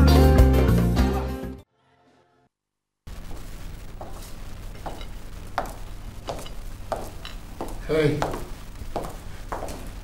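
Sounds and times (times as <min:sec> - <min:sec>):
footsteps: 0:03.1 - 0:10.0
steady low hum: 0:03.1 - 0:10.0.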